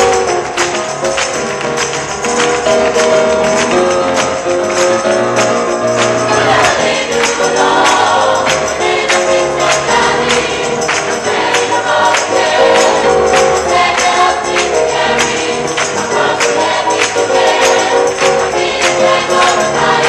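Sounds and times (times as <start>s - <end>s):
tambourine: 0.0s - 20.0s
choir singing pop song: 6.1s - 20.0s.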